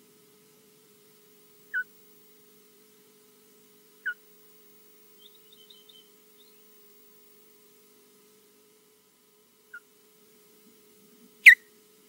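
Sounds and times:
osprey alarm call: 1.7 - 1.9, 4.0 - 4.2, 5.2 - 6.6
faint high chirps: 5.2 - 6.7.

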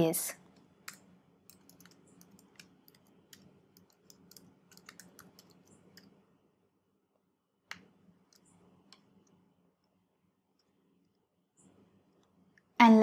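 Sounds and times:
keyboard typing: 0.6 - 6.2.

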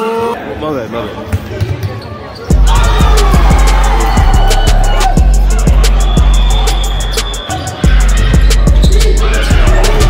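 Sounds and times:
voices of players and spectators: 0.0 - 10.0
music with heavy bass beat: 2.5 - 10.0.

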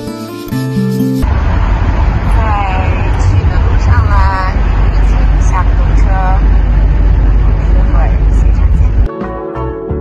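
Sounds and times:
car interior engine and road noise: 1.2 - 9.1.

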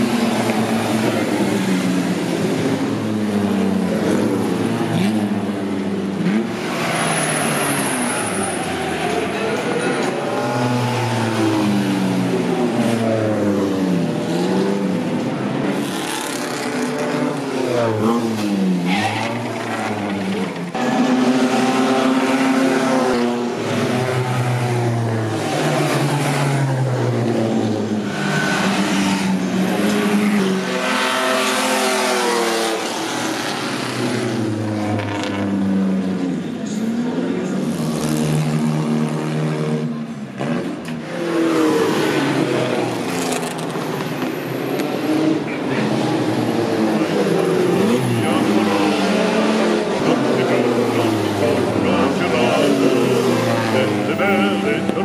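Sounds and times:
racing car engines accelerating: 0.0 - 55.0.

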